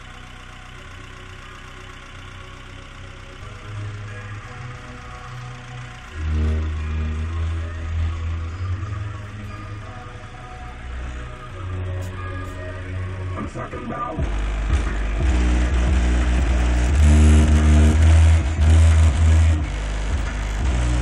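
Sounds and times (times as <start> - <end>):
bass-heavy music from car: 0.0 - 21.0.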